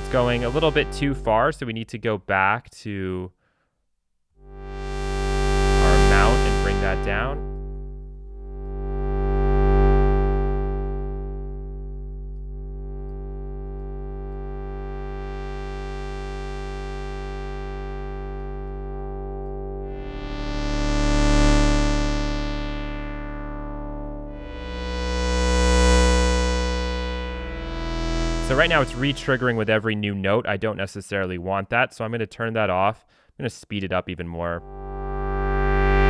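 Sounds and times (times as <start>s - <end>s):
filtered synth chords: 0.0s - 1.6s, 4.4s - 29.9s, 34.6s - 36.0s.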